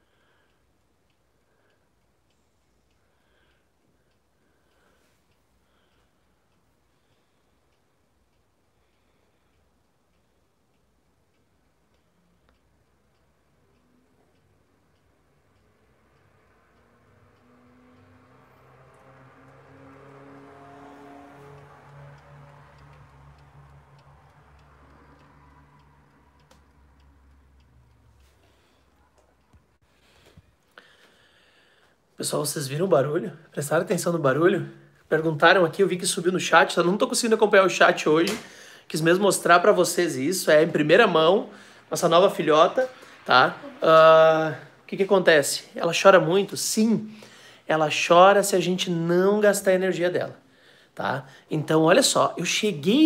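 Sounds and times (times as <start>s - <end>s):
alarm clock ticking: 0.0s - 53.0s
low hum: 13.4s - 31.7s.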